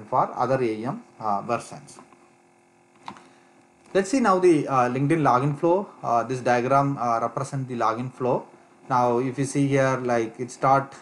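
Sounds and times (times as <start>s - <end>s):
man speaking: 0.0s - 2.0s, 3.9s - 11.0s
faint electrical hum: 0.0s - 11.0s.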